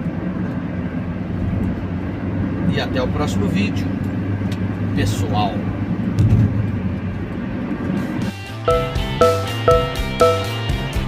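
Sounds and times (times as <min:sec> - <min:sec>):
engine and road noise in cabin: 0:00.0 - 0:11.0.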